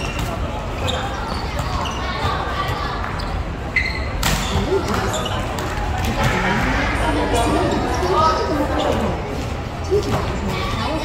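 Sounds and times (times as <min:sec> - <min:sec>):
shoe squeaks: 0:00.0 - 0:05.7
players' voices in gym: 0:00.0 - 0:11.0.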